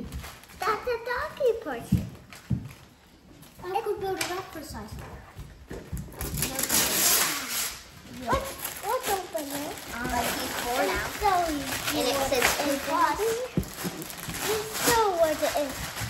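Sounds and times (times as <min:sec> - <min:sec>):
wrapping paper tearing and rustling: 0:00.0 - 0:01.1, 0:05.9 - 0:16.0.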